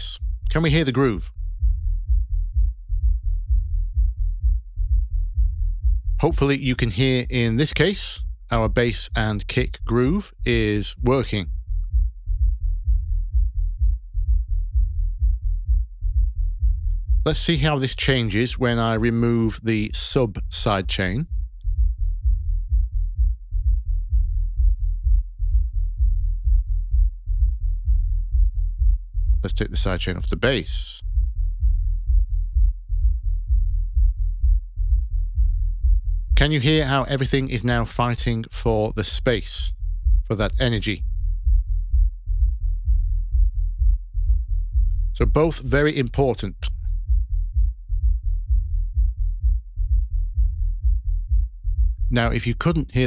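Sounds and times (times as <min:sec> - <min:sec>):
filtered kick drum and bass loop: 0:00.0 - 0:53.0.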